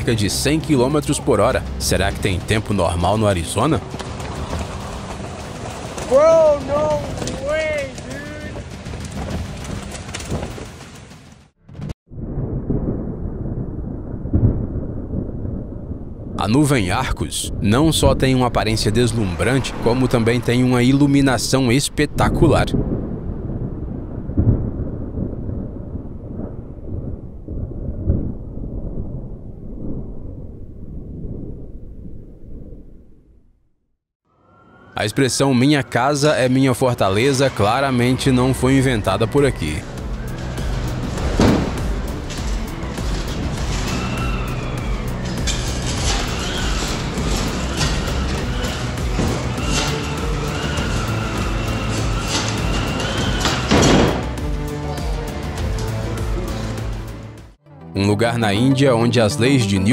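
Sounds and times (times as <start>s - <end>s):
thunder rumbling: 0.0s - 33.6s, 37.0s - 56.9s
storm wind rushing: 2.1s - 33.4s
faint wavering whistle: 44.0s - 45.3s.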